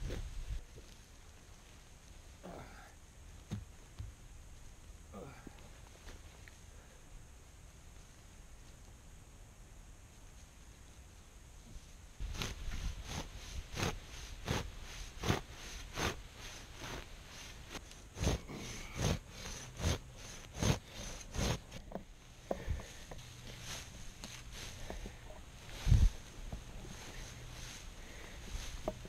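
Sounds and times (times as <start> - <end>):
hay knife strokes through hay: 12.2 - 29.0.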